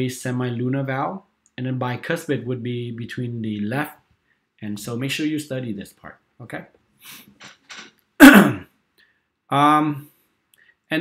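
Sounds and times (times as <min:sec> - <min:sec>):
person clearing throat: 0:08.2 - 0:08.7.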